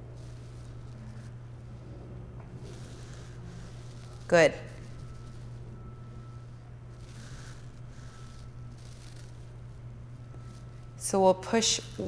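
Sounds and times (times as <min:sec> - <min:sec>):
steady low hum: 0:00.0 - 0:12.0
soft hissing: 0:02.6 - 0:09.4.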